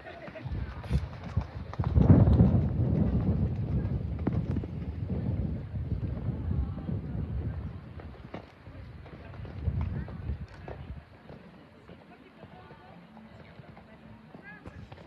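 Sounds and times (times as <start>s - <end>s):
horse hoofbeats on sand: 0.0s - 6.5s, 7.1s - 15.0s.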